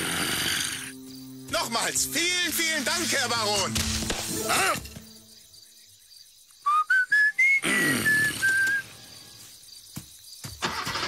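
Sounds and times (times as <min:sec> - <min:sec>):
person whistling a tune: 0:06.6 - 0:08.9.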